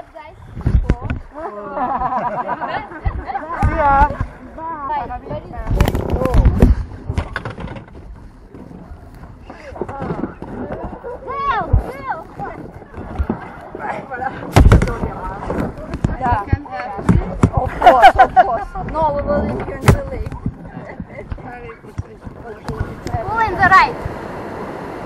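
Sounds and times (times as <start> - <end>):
thumps against inflatable raft: 9.7 - 24.2.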